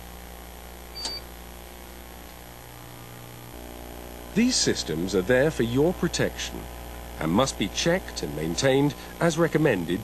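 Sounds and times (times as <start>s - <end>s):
steady low hum: 0.0s - 10.0s
brief click: 1.0s - 1.2s
high electronic beep: 1.0s - 1.2s.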